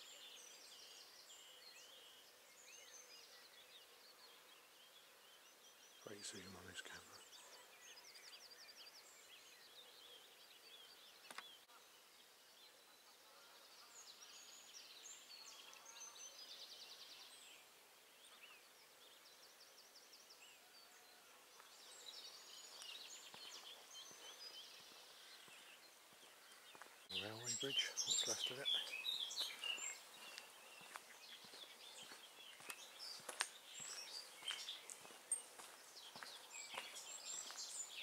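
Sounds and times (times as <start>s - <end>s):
songbirds singing: 0.0s - 38.0s.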